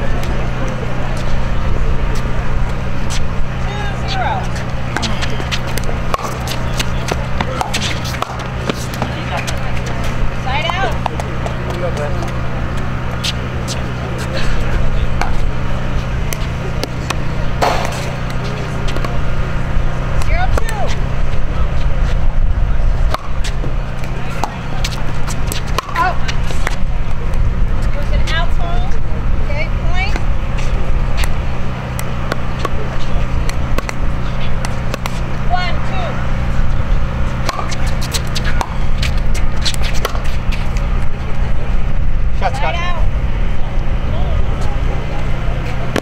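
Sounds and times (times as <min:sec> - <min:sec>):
low rumble: 0:12.1 - 0:45.6
faint distant voices: 0:43.3 - 0:46.0.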